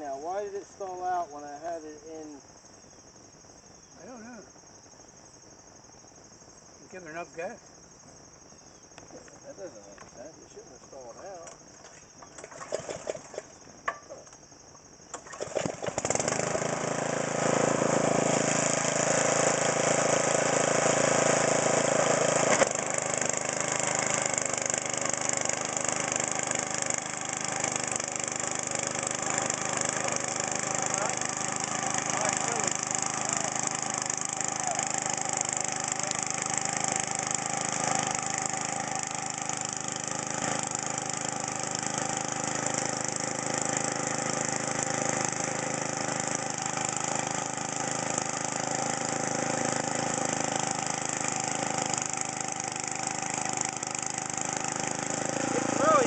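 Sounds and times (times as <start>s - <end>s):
tiller engine running: 12.2s - 14.0s, 15.1s - 56.0s
tines churning through sod: 12.3s - 13.6s, 15.2s - 56.0s.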